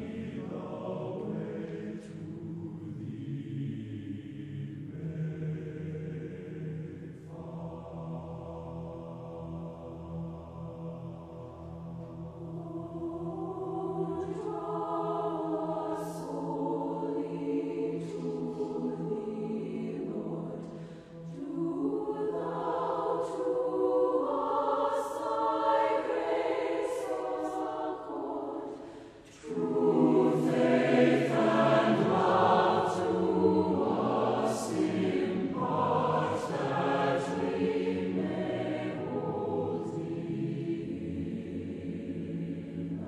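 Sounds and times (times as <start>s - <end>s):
mixed choir singing a hymn: 0.0s - 43.0s.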